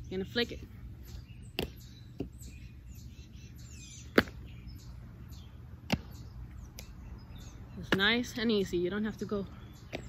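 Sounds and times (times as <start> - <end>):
birds chirping: 0.0 - 10.0
outdoor background noise: 0.0 - 10.0.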